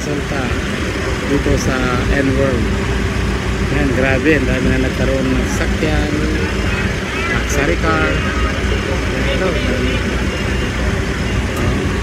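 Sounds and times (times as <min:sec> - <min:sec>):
car engines idling: 0:00.0 - 0:12.0
faint voices: 0:00.0 - 0:12.0.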